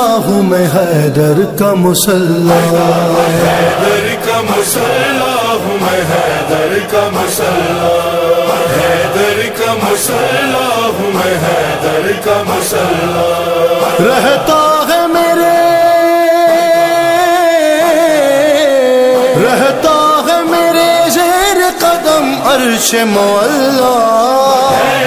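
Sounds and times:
voices chanting: 0:02.3 - 0:25.0.

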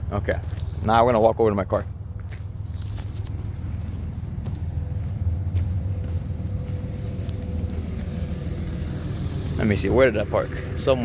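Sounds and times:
traffic rumble: 0:00.0 - 0:11.0
footsteps on gravel: 0:01.7 - 0:10.0.

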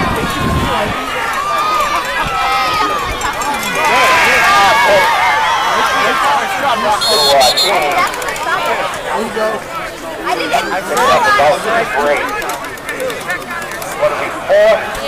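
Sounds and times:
spectators shouting and cheering: 0:00.0 - 0:15.0
referee's whistle: 0:07.0 - 0:07.9.

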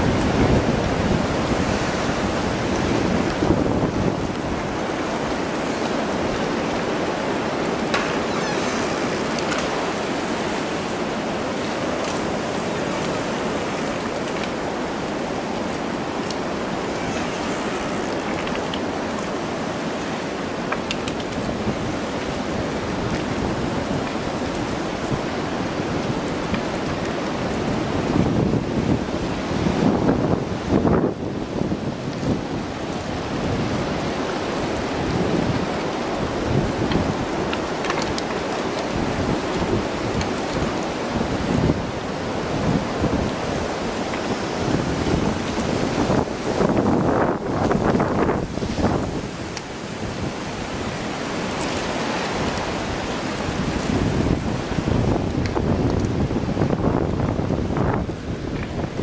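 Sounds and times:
wind buffeting microphone: 0:00.0 - 0:15.1, 0:21.2 - 0:59.0.

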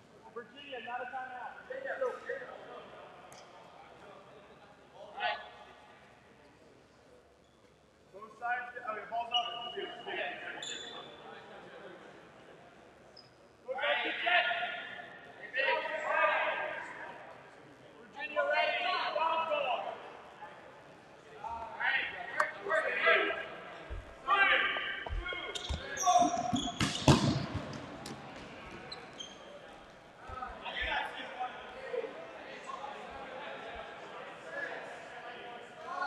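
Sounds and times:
players shouting in echoing gym: 0:13.7 - 0:17.2, 0:21.4 - 0:32.3.

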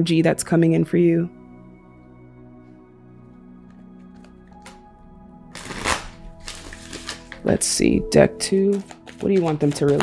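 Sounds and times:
soft background music: 0:00.0 - 0:10.0
cards shuffling: 0:03.7 - 0:04.8, 0:05.5 - 0:07.7, 0:08.5 - 0:10.0.

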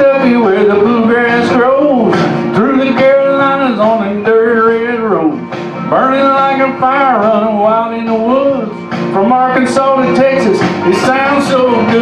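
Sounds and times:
country-rock backing band: 0:00.0 - 0:12.0.

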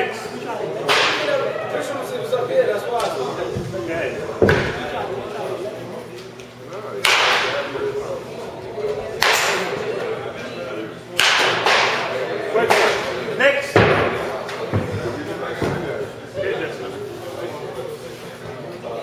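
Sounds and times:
baseball bat cracking balls: 0:03.0 - 0:05.4, 0:07.0 - 0:07.8, 0:11.2 - 0:13.2.

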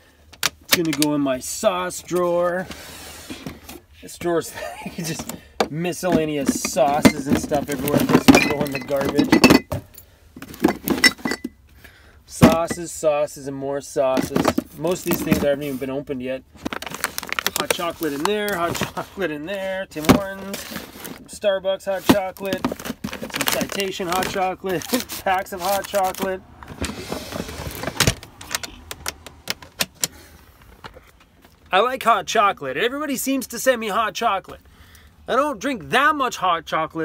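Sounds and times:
bottles clinking in a drawer: 0:06.0 - 0:11.6, 0:14.1 - 0:15.5.

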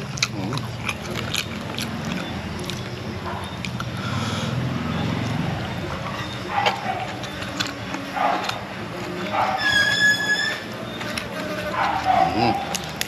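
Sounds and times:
wet chewing and lip-smacking: 0:00.0 - 0:04.0, 0:05.1 - 0:09.6, 0:10.8 - 0:13.0.

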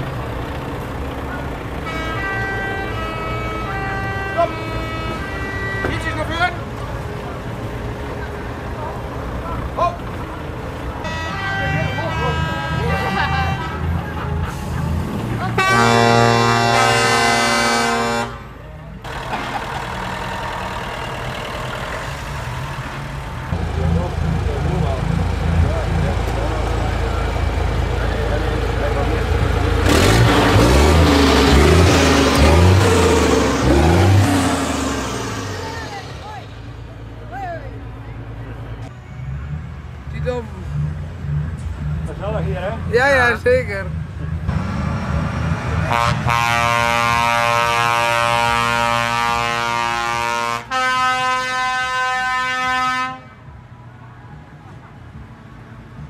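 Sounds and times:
vehicle noise with low rumble: 0:00.0 - 0:56.0
truck air horn blast: 0:01.8 - 0:06.3, 0:11.0 - 0:14.8, 0:15.4 - 0:18.6, 0:45.9 - 0:53.5
faint horn-like tones: 0:11.0 - 0:14.4, 0:15.5 - 0:18.6.

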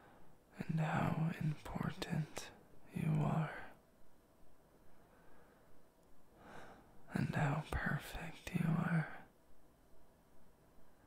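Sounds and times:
man half-whispering: 0:00.5 - 0:03.8, 0:07.1 - 0:09.3.

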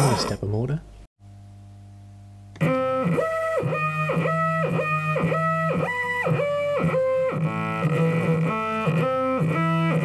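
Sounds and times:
faint steady hum: 0:00.4 - 0:02.6
stepper motor buzzy melody: 0:02.6 - 0:10.0.

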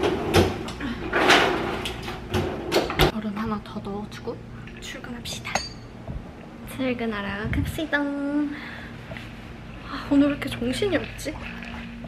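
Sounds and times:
freezer drawer sliding: 0:00.0 - 0:03.1.

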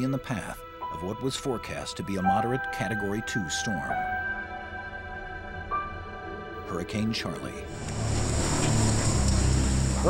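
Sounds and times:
strong wind and driving rain: 0:07.7 - 0:10.0.

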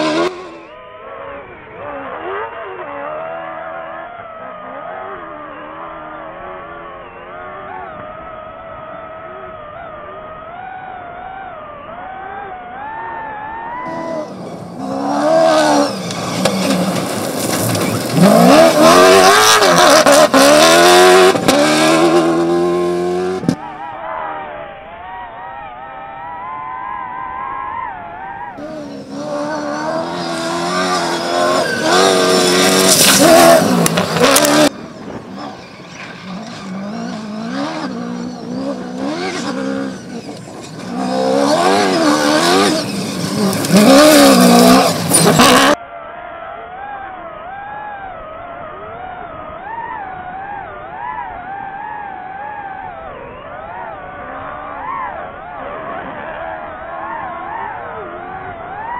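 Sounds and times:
truck engine revving: 0:00.0 - 0:08.4, 0:10.9 - 0:23.8, 0:28.0 - 0:45.8.

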